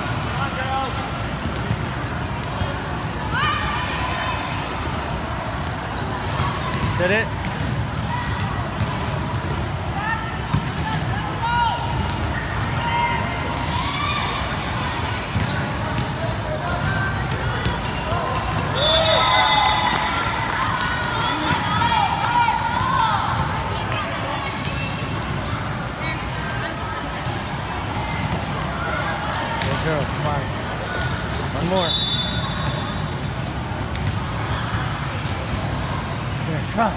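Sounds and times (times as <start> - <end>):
shouts and chatter of people: 0.0 - 36.9.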